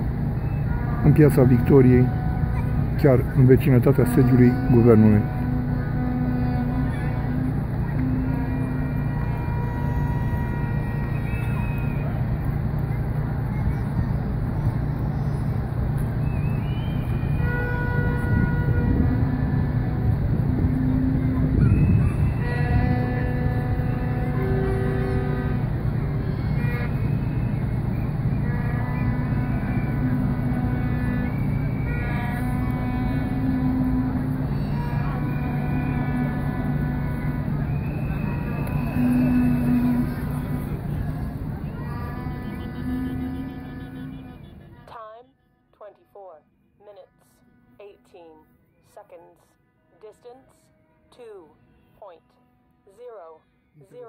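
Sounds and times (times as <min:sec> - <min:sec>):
steady low rumble: 0:00.0 - 0:44.8
crowd chatter: 0:00.0 - 0:45.2
horns blowing held notes: 0:00.0 - 0:54.0.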